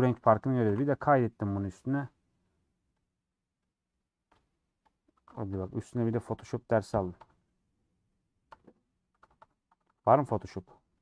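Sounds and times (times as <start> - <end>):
soft keyboard keystrokes: 8.5 - 10.1.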